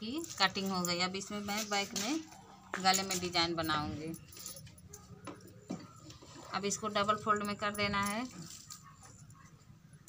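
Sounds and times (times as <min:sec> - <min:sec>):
metal bangles jingling: 0:00.0 - 0:09.5.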